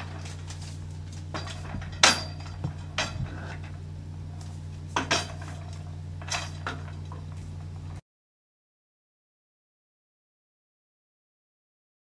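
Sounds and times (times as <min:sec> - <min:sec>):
metal clinks and rattles: 0:00.0 - 0:03.8
steady low hum: 0:00.0 - 0:08.0.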